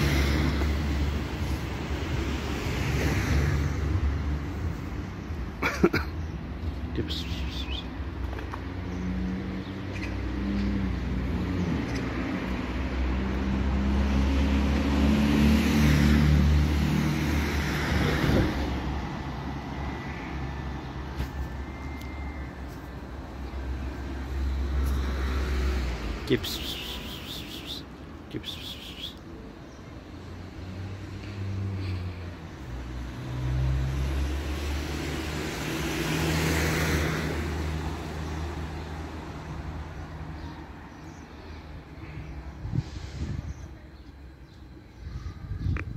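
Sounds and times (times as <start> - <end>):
vehicle passing by: 0.0 - 5.4, 8.6 - 29.2, 30.0 - 44.2
tyre noise on road: 0.0 - 45.0.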